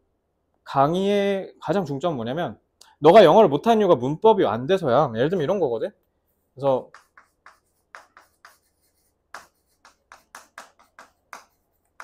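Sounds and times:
chalk tapping and scraping on board: 6.3 - 12.0.

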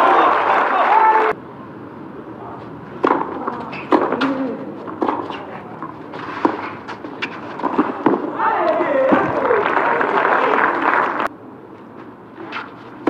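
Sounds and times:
racket hitting tennis ball: 2.9 - 9.5
hushed crowd: 7.7 - 11.3.

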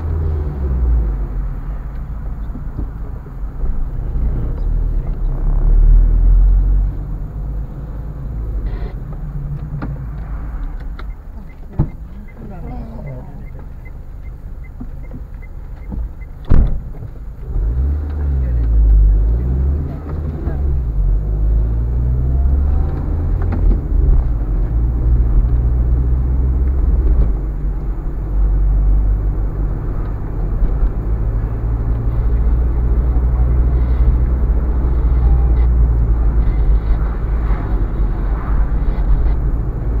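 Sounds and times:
car engine: 0.0 - 40.0
road noise: 0.0 - 40.0.

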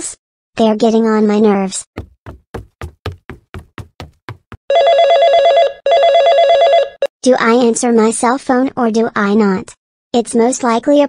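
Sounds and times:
short taps: 2.0 - 4.6
cell phone ringing: 4.7 - 7.0.

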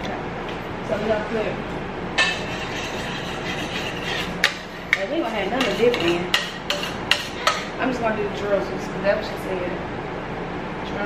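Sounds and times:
metal bowl knocking: 2.2 - 7.6
whisk scraping in bowl: 2.2 - 7.7.

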